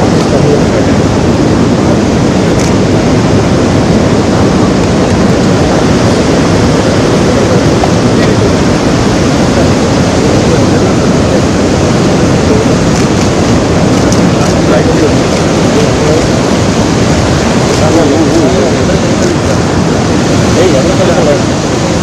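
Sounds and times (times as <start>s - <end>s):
water rushing through dam spillway: 0.0s - 22.0s.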